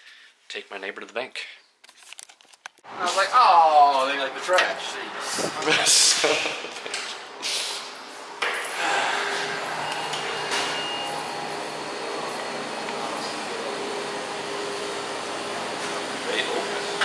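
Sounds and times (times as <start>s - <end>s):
person laughing: 5.4s - 7.1s
air-handling equipment humming: 8.4s - 17.0s
high beep: 9.6s - 11.6s.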